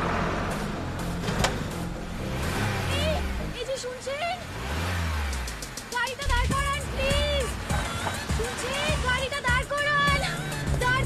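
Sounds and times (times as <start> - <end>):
car engine: 0.0 - 11.0
city traffic: 0.0 - 11.0
engine revving: 0.0 - 11.0.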